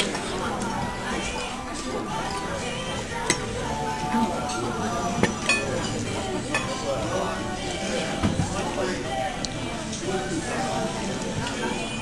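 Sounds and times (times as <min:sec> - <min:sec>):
background music: 0:00.0 - 0:12.0
murmured voices: 0:00.0 - 0:12.0
dishes clinking: 0:04.3 - 0:06.9.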